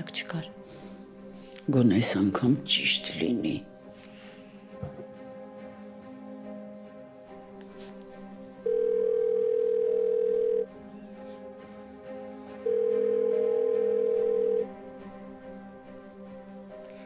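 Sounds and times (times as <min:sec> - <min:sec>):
quiet background music: 0:00.0 - 0:17.0
telephone ringback beeps: 0:08.7 - 0:10.7, 0:12.7 - 0:14.6.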